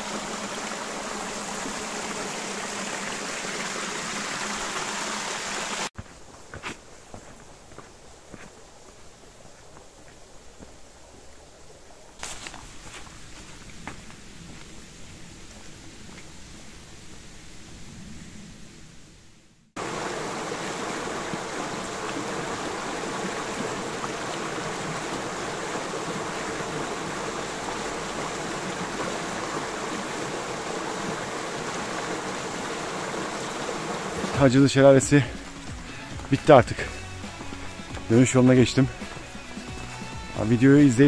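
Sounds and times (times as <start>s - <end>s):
water rushing over stones: 0.0s - 5.9s, 19.8s - 41.0s.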